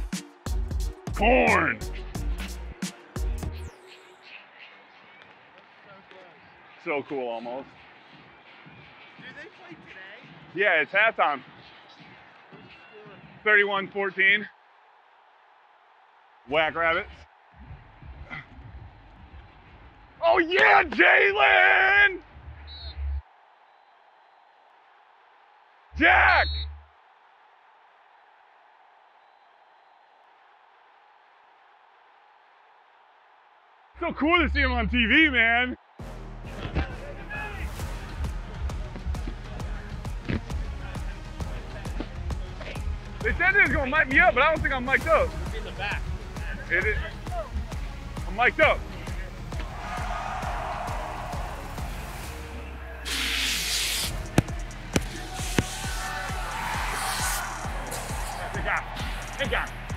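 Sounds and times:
crowd noise: 0:00.0 - 0:59.9
stadium music: 0:00.0 - 0:59.9
smoke jet hiss: 0:53.1 - 0:58.4.

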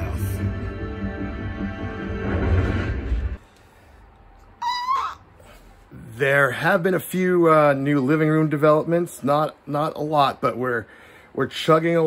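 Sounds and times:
high-pitched animal call: 0:04.6 - 0:05.3.

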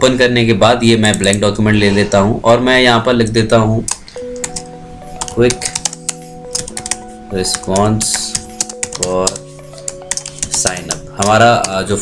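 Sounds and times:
soft background music: 0:00.0 - 0:12.0
keyboard keys clicking: 0:01.0 - 0:01.5, 0:03.3 - 0:12.0.

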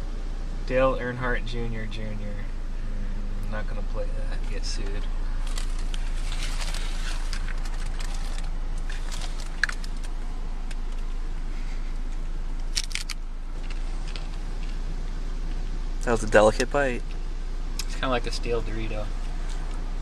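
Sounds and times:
low hum inside car: 0:00.0 - 0:20.0
crunchy taco shell cracking: 0:05.5 - 0:11.0, 0:12.7 - 0:14.8.

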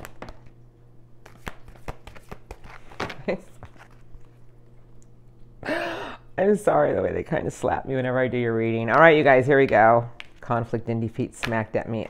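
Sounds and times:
cards being shuffled by hand: 0:00.0 - 0:00.6, 0:01.2 - 0:04.6, 0:08.8 - 0:12.0.

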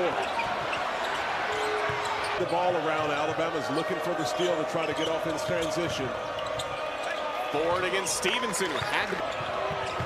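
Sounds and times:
shoes squeaking on court: 0:00.0 - 0:02.7, 0:08.6 - 0:10.0
crowd noise: 0:00.0 - 0:10.0
basketball bouncing: 0:08.8 - 0:10.0.

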